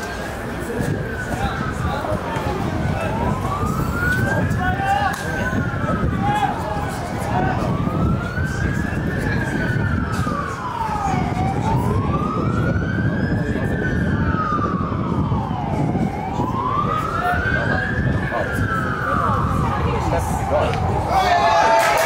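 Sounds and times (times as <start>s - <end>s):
emergency siren wailing: 0.0s - 22.0s.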